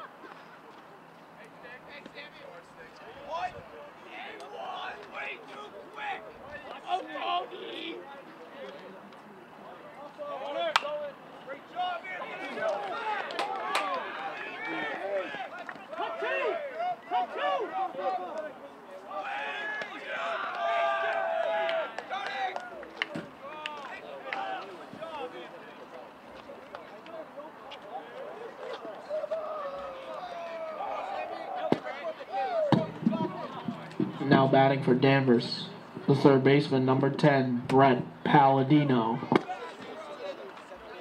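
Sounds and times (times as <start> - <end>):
crowd shouting and cheering: 2.3 - 8.0, 9.9 - 41.0
long drawn-out yell: 19.1 - 22.8, 29.0 - 33.5.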